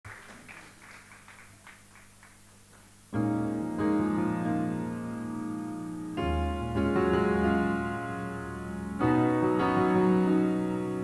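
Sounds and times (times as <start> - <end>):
low electrical hum: 0.1 - 11.0.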